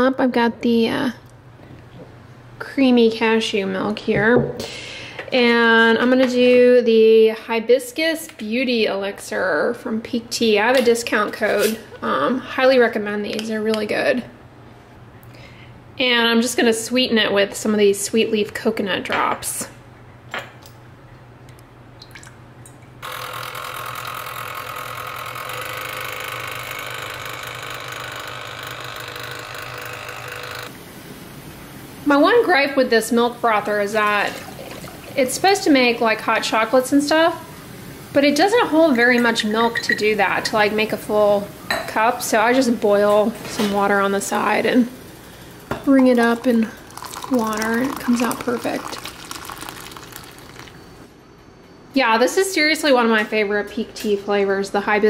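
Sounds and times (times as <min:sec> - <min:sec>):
milk frother motor humming: 0:23.0 - 0:30.8, 0:46.2 - 0:51.0
hot water poured into a mug: 0:34.0 - 0:35.2, 0:46.2 - 0:51.0.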